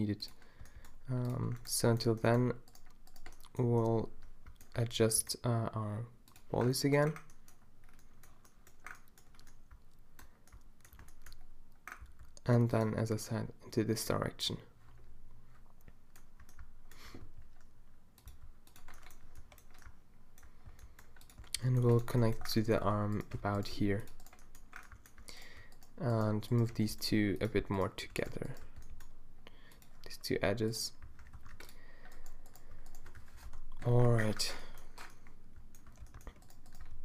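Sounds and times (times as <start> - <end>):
computer keyboard tapping and clicks: 0.1 - 5.4, 6.2 - 13.0, 14.9 - 37.0.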